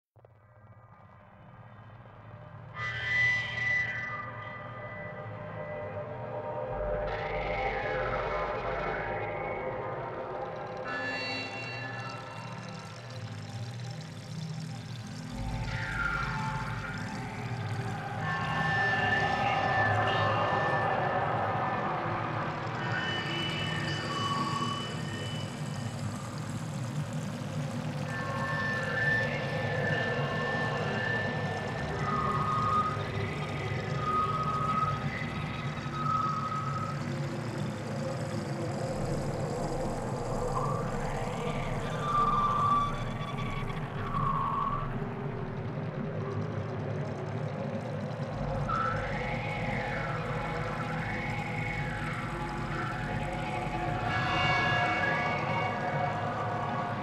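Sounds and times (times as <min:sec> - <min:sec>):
steady low drone: 0:04.3 - 0:57.0
siren-like gliding tones: 0:10.8 - 0:57.0
held whistle-like tones: 0:10.9 - 0:27.2, 0:27.9 - 0:45.6, 0:47.9 - 0:57.0.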